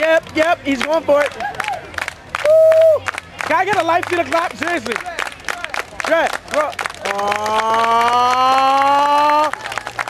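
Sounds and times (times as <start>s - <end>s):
spectators clapping in rhythm: 0.0s - 10.0s.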